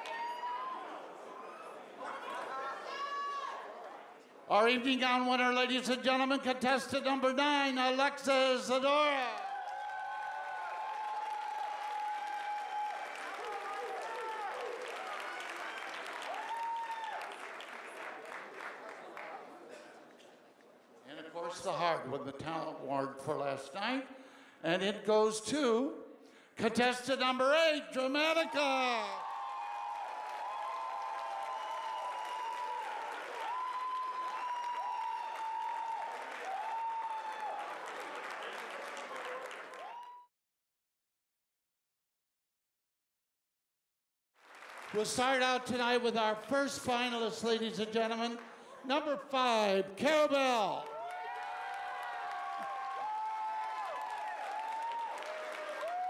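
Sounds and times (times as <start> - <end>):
crowd whooping and shouting: 0.0 - 4.0, 9.0 - 17.4, 28.2 - 38.2, 39.1 - 40.3, 50.8 - 56.0
audience applause: 9.0 - 20.0, 28.5 - 40.3, 44.4 - 45.7, 50.7 - 56.0.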